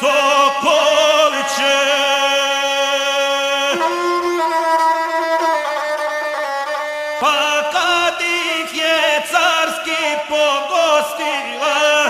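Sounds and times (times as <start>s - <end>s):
bowed single-string fiddle: 0.0s - 12.0s.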